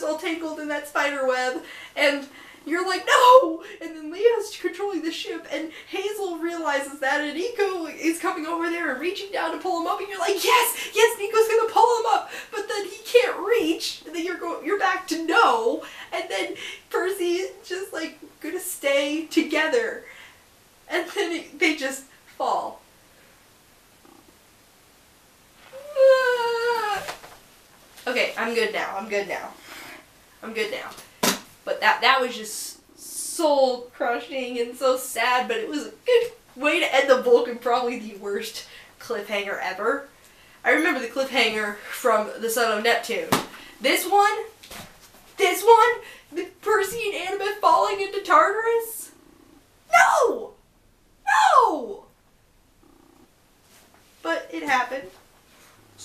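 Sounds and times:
faint hum: 0:00.0 - 0:56.0
woman wailing: 0:25.7 - 0:27.1.

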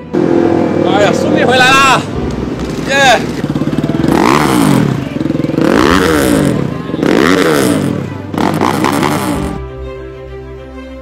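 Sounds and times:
music: 0:00.0 - 0:11.0
motorcycle engine revving: 0:00.1 - 0:09.6.

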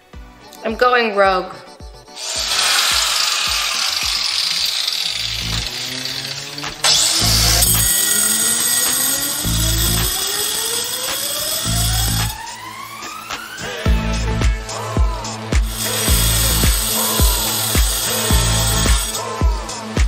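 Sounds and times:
angle grinder cutting metal: 0:02.2 - 0:13.3, 0:15.6 - 0:20.0.

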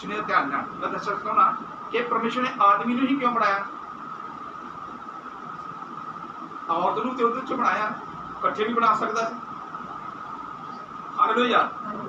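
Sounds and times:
background hiss: 0:00.0 - 0:12.0
faint high hum: 0:00.0 - 0:12.0.

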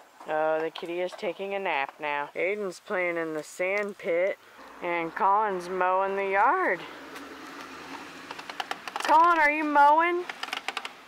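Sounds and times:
toy lawn mower clicking and rattling: 0:07.9 - 0:11.0.

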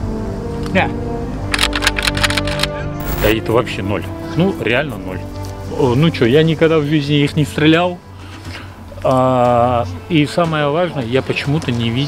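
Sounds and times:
background music with held tones: 0:00.0 - 0:12.0
digital glitch clicks: 0:03.0 - 0:03.4.

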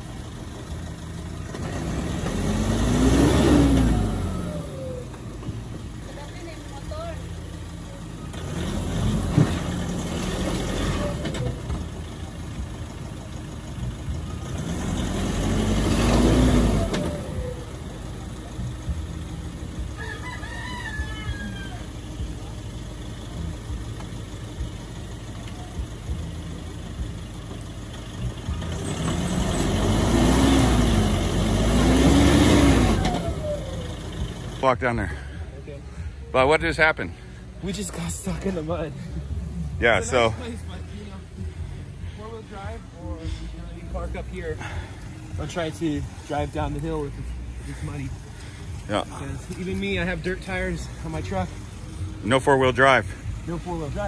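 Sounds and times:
truck engine revving: 0:00.0 - 0:20.0, 0:21.7 - 0:54.0
rooster crowing: 0:19.9 - 0:22.1.

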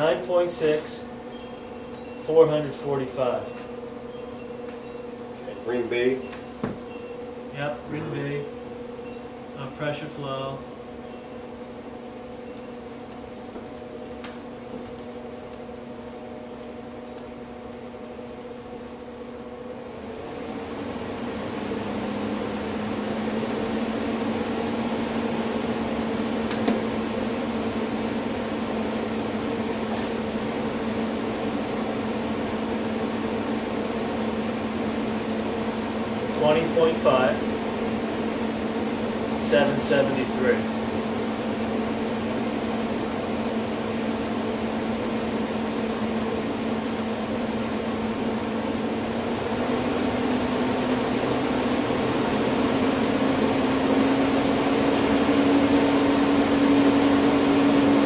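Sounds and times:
fan whooshing hum: 0:00.0 - 0:58.0.

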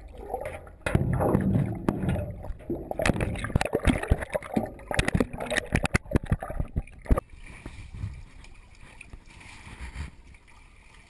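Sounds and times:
water sloshing and splashing: 0:00.0 - 0:11.0.

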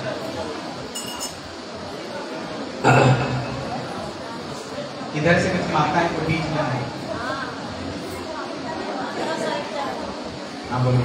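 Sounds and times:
low background murmur: 0:00.0 - 0:11.0
light clink with ringing: 0:00.9 - 0:01.4.

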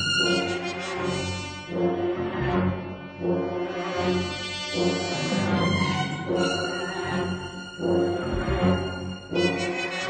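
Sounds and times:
low brass chords: 0:07.9 - 0:09.8.

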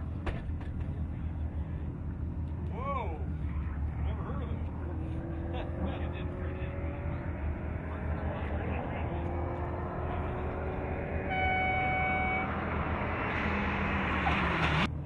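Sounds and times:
rally car engine running hard: 0:03.3 - 0:15.0
horn-like tone: 0:10.4 - 0:13.6.

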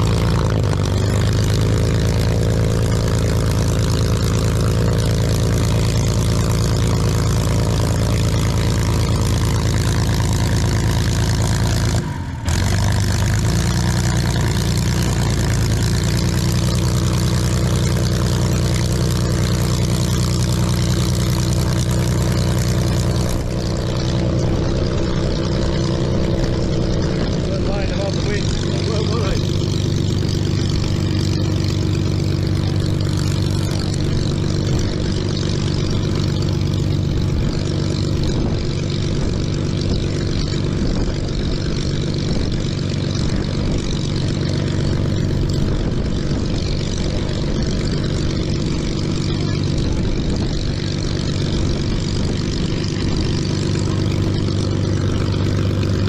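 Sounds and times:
aircraft engine droning: 0:00.0 - 0:56.0.

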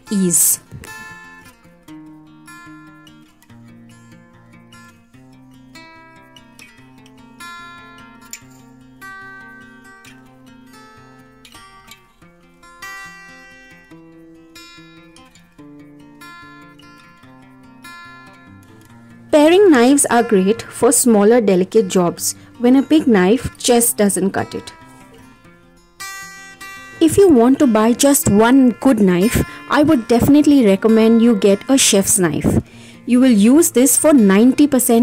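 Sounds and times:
acoustic guitar music: 0:00.0 - 0:35.0.

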